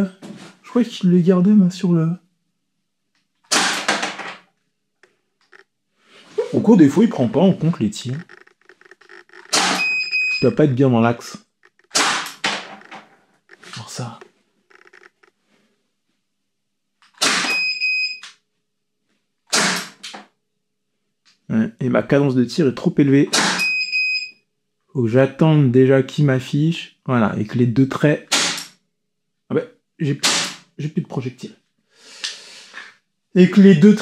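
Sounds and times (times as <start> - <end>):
airsoft pistol shot: 3.5 - 4.2, 9.5 - 9.9, 11.9 - 12.6, 17.2 - 17.6, 19.5 - 20.0, 23.3 - 23.7, 28.3 - 28.7, 30.2 - 30.6
electronic beep: 8.2 - 10.6, 17.5 - 18.3, 23.6 - 24.4.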